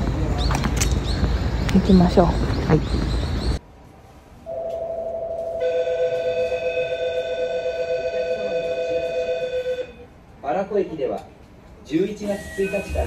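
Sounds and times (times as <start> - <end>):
high steady ringing tone: 4.5 - 10.1, 12.2 - 13.0.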